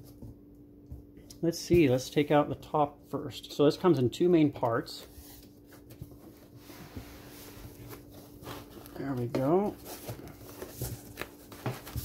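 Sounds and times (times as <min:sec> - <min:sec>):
low steady hum: 0:00.0 - 0:12.0
foam packing rustling and scraping: 0:05.1 - 0:12.0.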